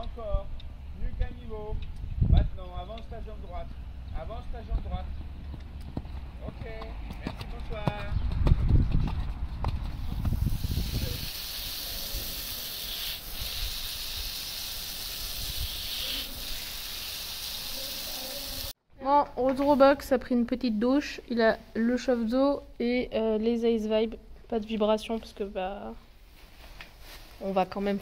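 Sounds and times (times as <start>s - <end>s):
wind rumbling on microphone: 0.0s - 3.3s, 4.0s - 12.4s, 15.1s - 15.9s
hose nozzle spraying water: 10.2s - 18.7s.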